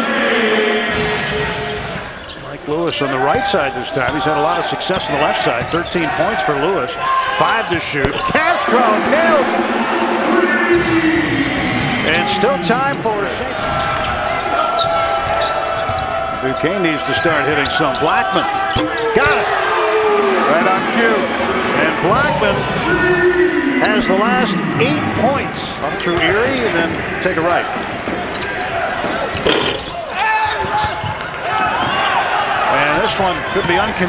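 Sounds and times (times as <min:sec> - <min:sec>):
arena crowd noise: 0:00.0 - 0:34.0
steady pitched tone: 0:08.6 - 0:13.2, 0:20.0 - 0:26.1.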